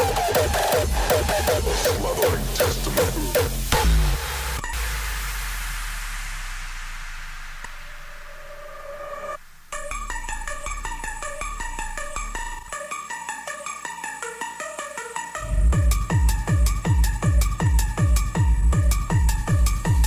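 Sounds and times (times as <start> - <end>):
hard kick beat: 0.0 - 8.1, 15.4 - 20.0
sustained wash and held bass: 0.0 - 12.7, 15.4 - 20.0
synth line: 3.8 - 13.0
synth melody: 9.7 - 20.0.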